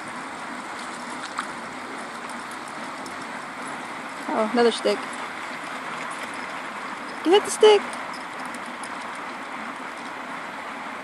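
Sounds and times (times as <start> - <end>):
water pouring through culvert: 0.0 - 11.0.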